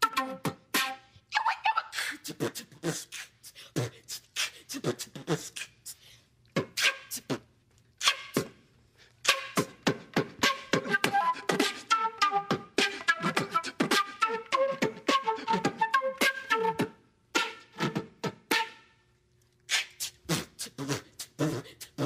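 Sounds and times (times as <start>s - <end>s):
flute melody: 0.0s - 1.9s, 9.3s - 9.8s, 10.4s - 19.1s
vocal beatboxing: 0.0s - 8.5s, 9.2s - 14.1s, 19.7s - 22.0s.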